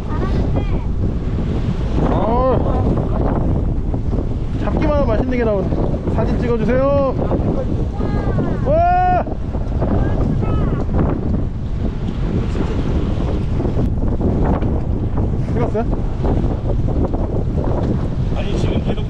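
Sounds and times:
choppy water wash: 0.0 - 19.0
wind buffeting microphone: 0.0 - 19.0
person exclaiming: 8.0 - 9.4.

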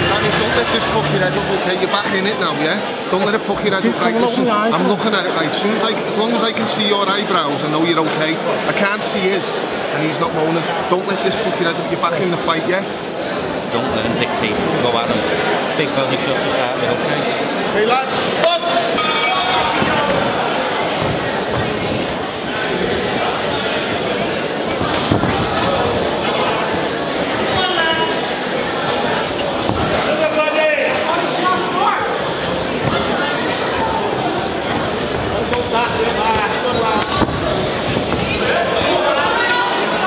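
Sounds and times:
crowd chatter and shouting: 0.0 - 40.0
crowd shouting: 29.8 - 40.0.

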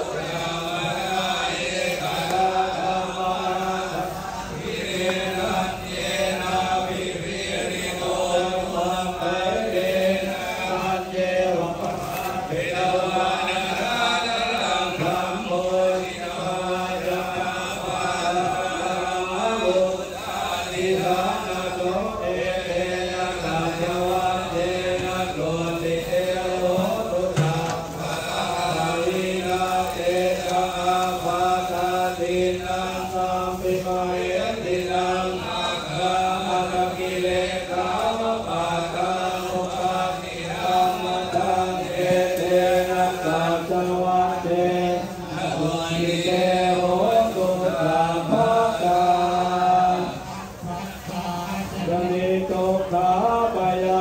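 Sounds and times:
voices chanting in monotone: 0.0 - 54.0.

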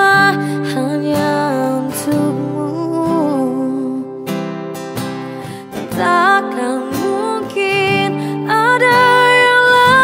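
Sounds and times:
woman singing: 0.0 - 4.5, 5.4 - 10.0
acoustic guitar: 0.0 - 10.0.

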